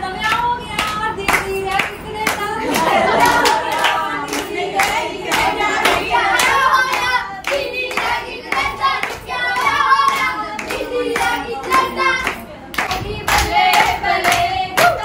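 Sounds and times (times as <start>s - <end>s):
women singing together: 0.0s - 15.0s
women clapping hands: 0.3s - 15.0s.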